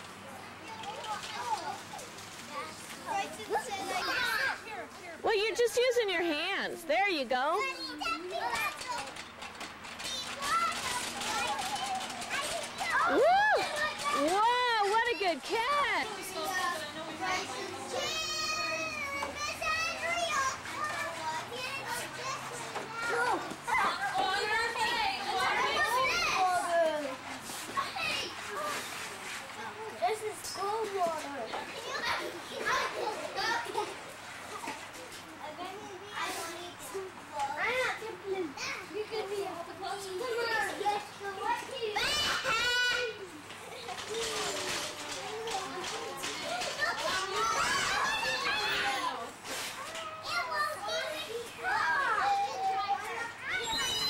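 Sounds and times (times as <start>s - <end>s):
children chattering: 0.0s - 54.0s.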